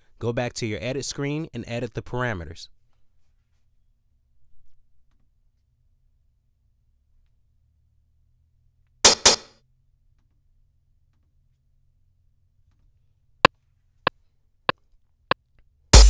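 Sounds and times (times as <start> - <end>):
drum machine pattern: 9.1 - 9.4
sharp hits: 9.1 - 9.5.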